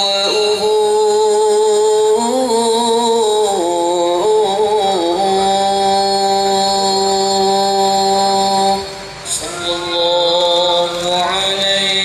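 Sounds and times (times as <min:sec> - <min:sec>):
devotional music over loudspeaker: 0:00.0 - 0:12.0.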